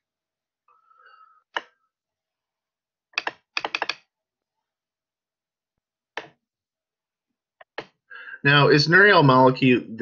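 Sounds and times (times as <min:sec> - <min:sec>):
computer keys clicking: 0:03.1 - 0:04.1.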